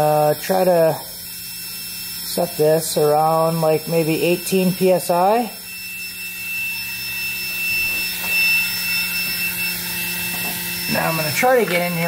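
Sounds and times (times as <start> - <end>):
multimeter continuity buzzer: 0.0 - 12.0.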